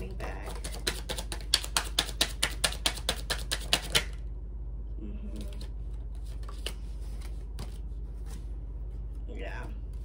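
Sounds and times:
steady low hum: 0.0s - 10.0s
cards shuffling and clicking: 0.2s - 4.2s, 5.4s - 8.3s.

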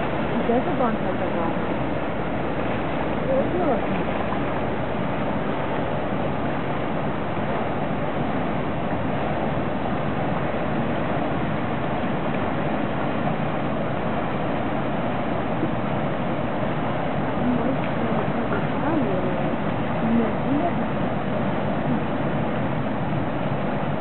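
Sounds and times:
water rushing: 0.0s - 24.0s
wind: 0.0s - 24.0s.

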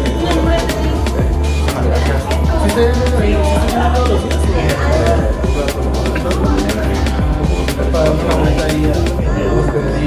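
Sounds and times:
music with strong bass beat: 0.0s - 10.0s
voices talking: 0.0s - 10.0s.

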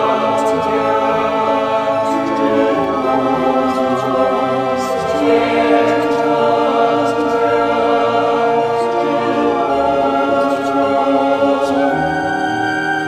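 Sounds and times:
choir singing held notes: 0.0s - 13.0s.

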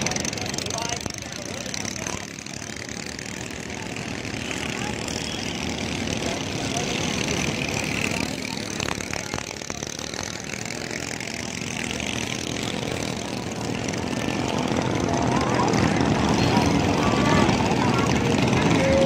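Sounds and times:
outboard motors droning: 0.0s - 19.0s.

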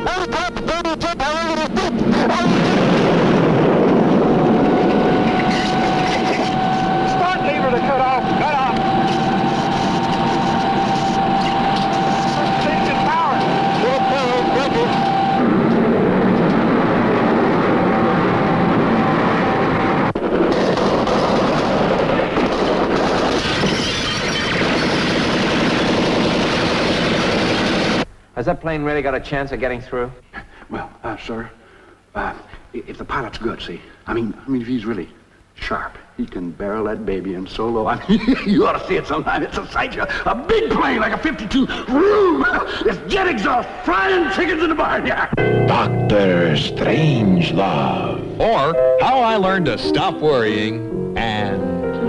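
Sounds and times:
jet engine roar: 0.0s - 28.1s
steady high tone: 4.0s - 20.1s, 45.4s - 52.0s.

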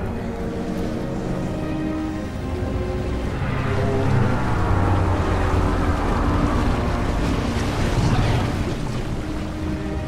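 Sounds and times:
deep steady rumble: 0.0s - 10.0s
faint music: 0.0s - 10.0s
rushing churning water: 0.0s - 10.0s.

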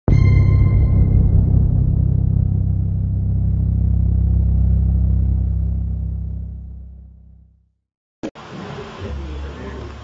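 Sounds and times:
deep rumbling boom hit: 0.1s - 7.5s.

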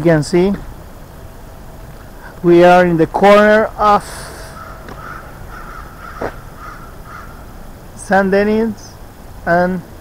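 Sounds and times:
bird calling in short notes: 4.4s - 7.5s.

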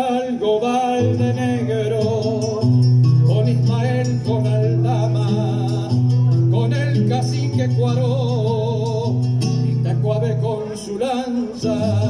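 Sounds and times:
acoustic guitar: 0.0s - 12.0s
man singing long notes: 0.0s - 12.0s.

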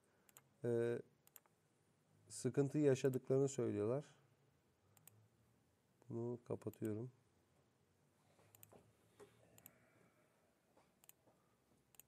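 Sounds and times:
faint clicks: 5.0s - 5.2s, 8.5s - 9.8s, 11.0s - 12.0s.

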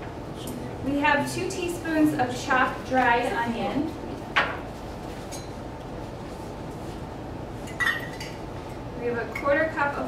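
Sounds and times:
room noise: 0.0s - 10.0s
kitchenware clink: 7.7s - 8.4s.

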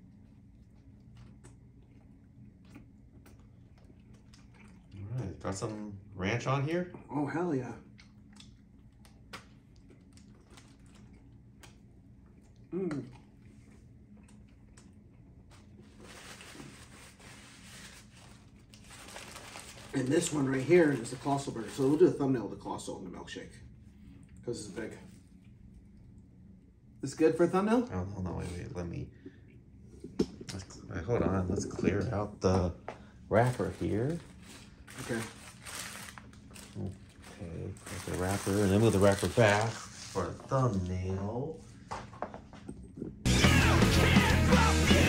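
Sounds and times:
chewing and mouth clicks: 0.1s - 5.2s, 7.9s - 15.8s
paper wrapper rustling: 15.5s - 22.2s, 33.3s - 40.8s.

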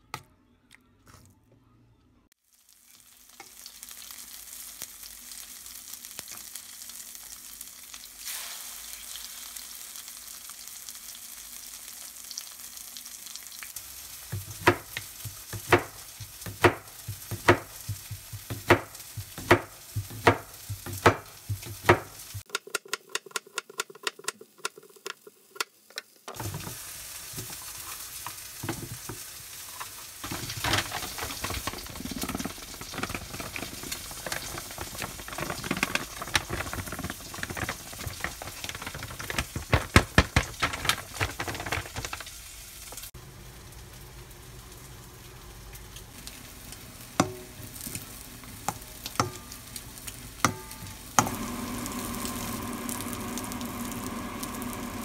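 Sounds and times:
sizzling hiss: 2.5s - 22.5s, 25.1s - 32.9s.

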